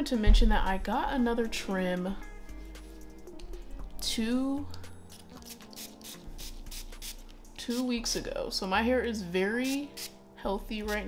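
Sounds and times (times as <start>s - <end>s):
hairbrush scratching through hair: 5.1s - 8.0s, 9.6s - 10.2s.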